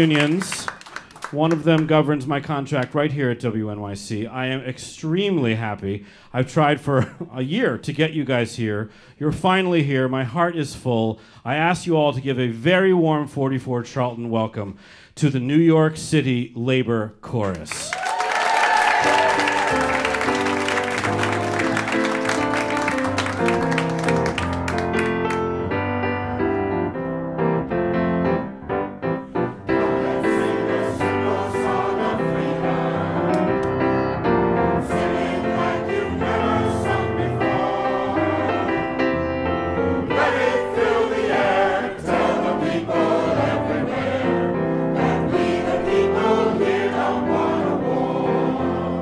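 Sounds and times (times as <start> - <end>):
audience applause: 0.0 - 2.1, 17.8 - 25.4
piano chords: 18.8 - 49.0
mixed choir singing: 29.5 - 33.8, 34.8 - 39.2, 40.0 - 49.0.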